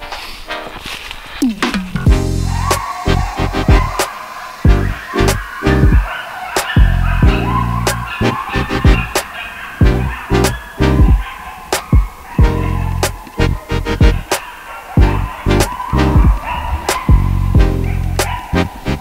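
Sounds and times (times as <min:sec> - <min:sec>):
music with driving beat: 0:01.5 - 0:04.1, 0:04.7 - 0:11.2, 0:11.8 - 0:14.4, 0:15.0 - 0:19.0.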